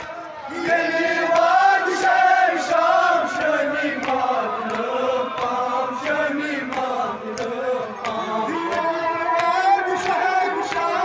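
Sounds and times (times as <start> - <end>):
men's voices chanting: 0.0 - 11.0
man chanting through loudspeaker: 2.6 - 11.0.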